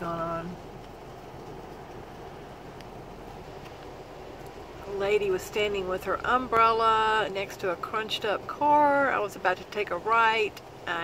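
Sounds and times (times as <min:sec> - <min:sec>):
car cabin rumble and hiss: 0:00.0 - 0:11.0
faint ticks: 0:00.8 - 0:04.6.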